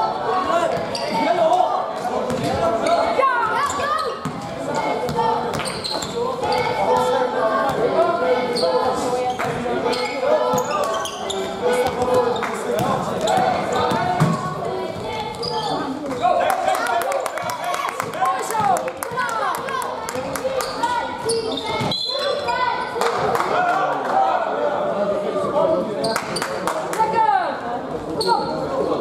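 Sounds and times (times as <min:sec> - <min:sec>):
basketball bouncing on hall floor: 0:04.2 - 0:07.1.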